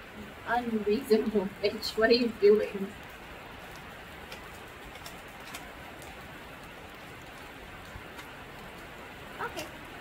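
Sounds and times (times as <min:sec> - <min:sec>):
heavy rain on metal roof: 0:00.0 - 0:10.0.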